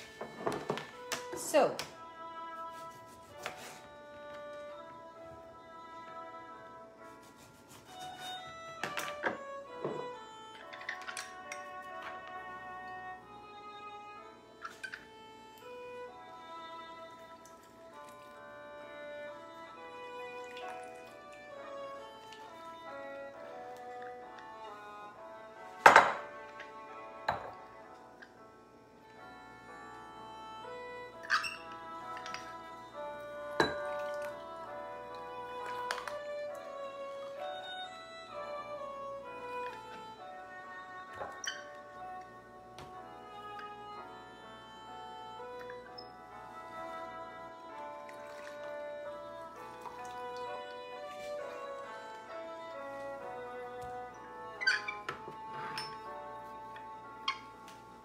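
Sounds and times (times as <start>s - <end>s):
instrumental background music: 0.0s - 58.0s.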